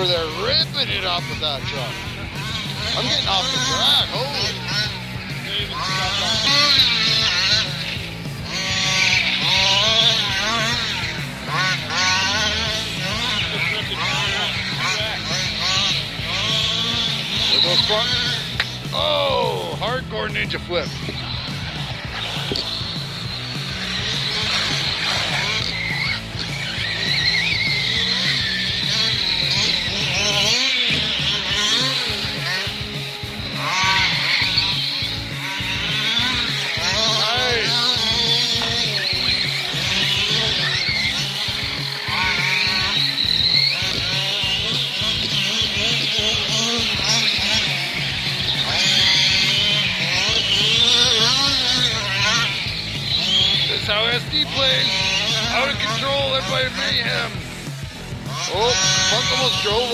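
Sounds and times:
background music with steady beat: 0.0s - 59.9s
electric motors whining and revving: 0.0s - 59.9s.

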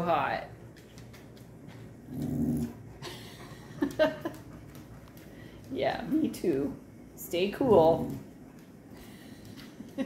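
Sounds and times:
dog grumbling: 2.0s - 2.8s.

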